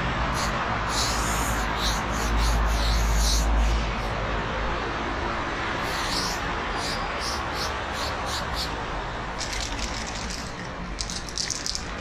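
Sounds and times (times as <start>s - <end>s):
spray can hissing: 0.4s - 1.9s
spray can mixing ball rattling: 9.4s - 12.0s.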